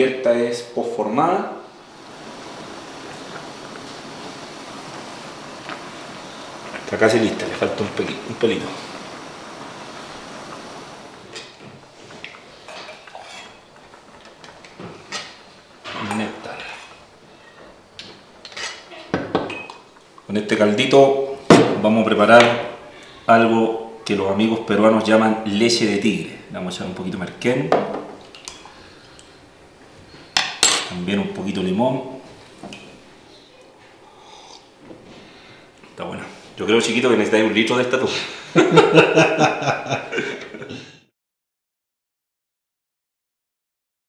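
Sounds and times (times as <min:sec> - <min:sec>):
steady hiss: 0:00.0 - 0:40.8.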